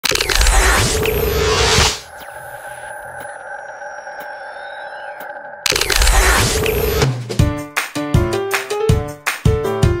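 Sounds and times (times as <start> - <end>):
held synth tones with ticks: 0.1 - 7.1.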